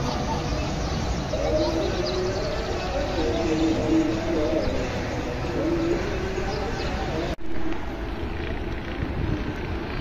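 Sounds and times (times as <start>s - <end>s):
low outdoor rumble: 0.0s - 10.0s
pigeons cooing: 0.1s - 7.4s.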